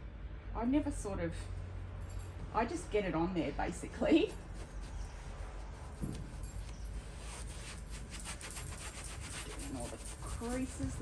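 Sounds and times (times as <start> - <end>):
paintbrush scrubbing fabric: 4.4 - 11.0.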